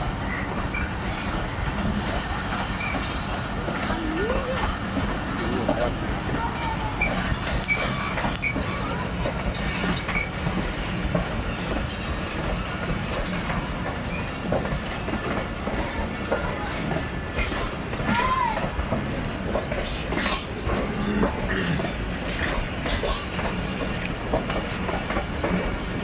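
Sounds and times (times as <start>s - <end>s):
train wheels clacking over rail joints: 0.0s - 26.0s
wheel squeal: 2.6s - 3.2s, 6.9s - 10.5s, 12.6s - 16.8s.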